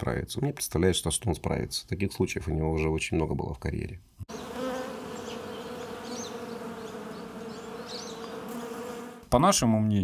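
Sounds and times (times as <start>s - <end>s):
bees buzzing: 4.3s - 9.3s.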